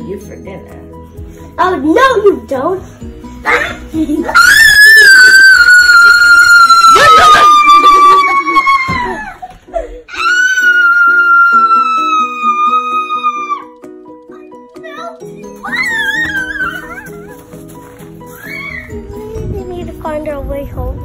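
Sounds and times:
light plucked background music: 0.0s - 21.0s
girl screaming: 3.5s - 9.4s, 10.1s - 13.7s, 15.6s - 17.3s, 18.3s - 19.0s.

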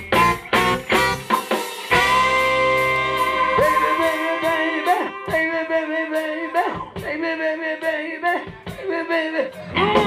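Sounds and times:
funk band playing: 0.0s - 10.0s.

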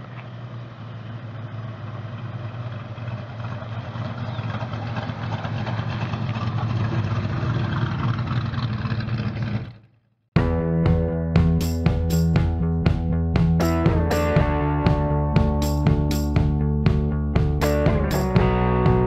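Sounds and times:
car engine droning: 0.0s - 19.0s.

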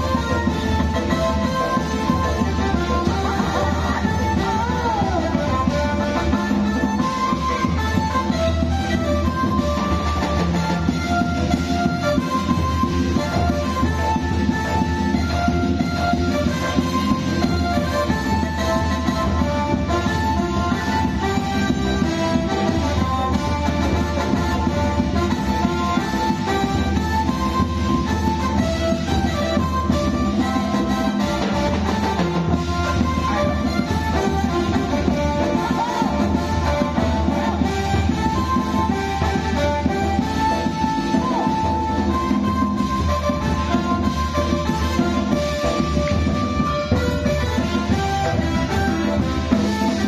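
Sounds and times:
instrumental melody of held notes: 0.0s - 50.0s.

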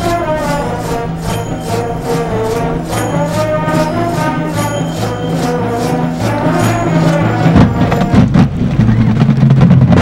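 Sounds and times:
low brass holding notes: 0.0s - 8.4s
marching band playing: 0.0s - 10.0s
quick drum strokes: 0.0s - 10.0s.

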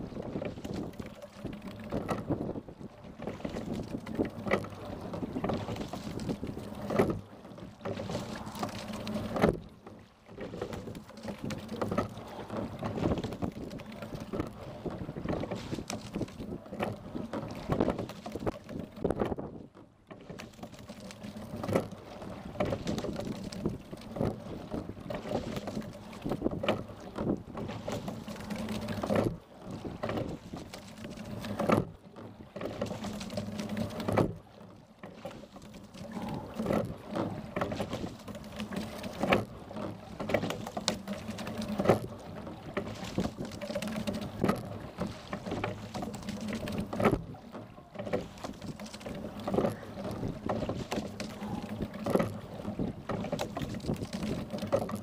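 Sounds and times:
water rushing along hull: 0.0s - 55.0s
oars knocking: 0.1s - 55.0s.

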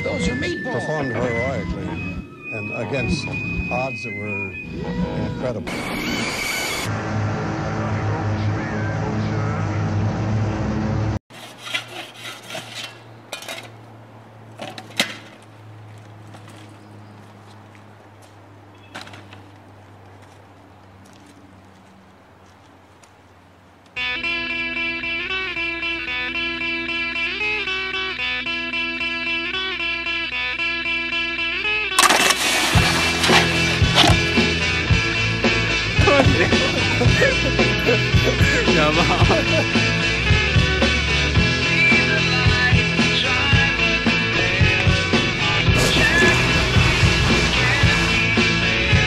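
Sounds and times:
music with wavering melody: 0.0s - 5.7s, 24.0s - 45.4s
soundtrack music: 33.7s - 49.0s.

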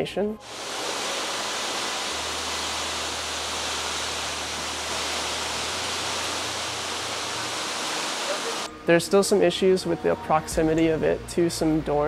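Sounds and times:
steam plant rushing noise: 0.4s - 8.7s.

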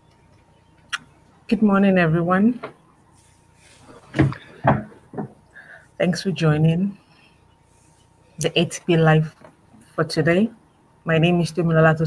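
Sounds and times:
short knocks: 4.1s - 5.4s.

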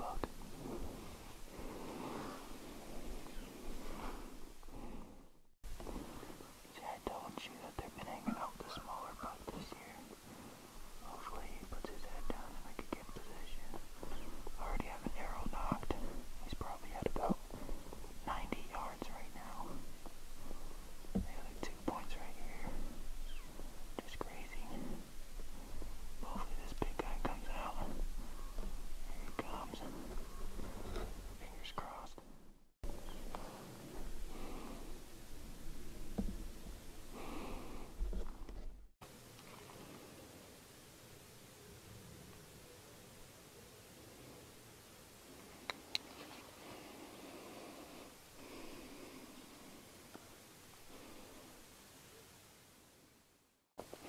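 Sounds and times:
person whispering: 0.0s - 1.0s, 6.7s - 10.1s, 11.0s - 19.9s, 21.2s - 23.0s, 23.9s - 25.1s, 26.2s - 28.2s, 29.0s - 30.2s, 31.0s - 32.3s.

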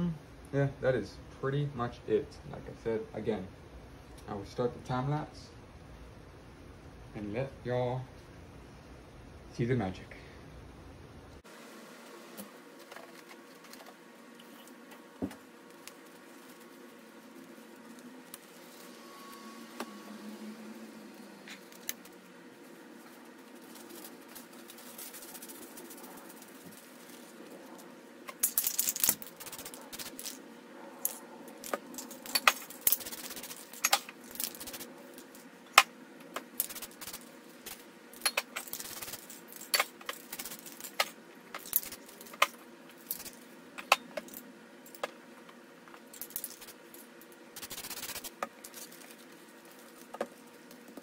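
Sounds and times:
low hum: 14.0s - 42.4s
plastic bag crumpling: 23.1s - 27.6s
spray cans clicking and rattling: 31.0s - 34.9s.

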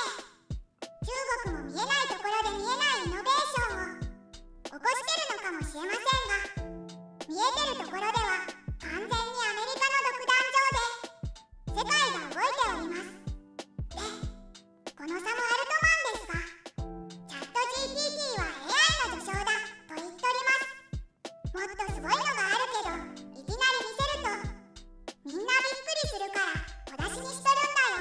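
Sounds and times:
high-pitched voice narrating: 0.0s - 0.3s, 1.0s - 4.1s, 4.7s - 13.3s, 13.9s - 16.6s, 17.2s - 20.9s, 21.5s - 24.6s, 25.2s - 28.0s
light background music: 0.0s - 28.0s.

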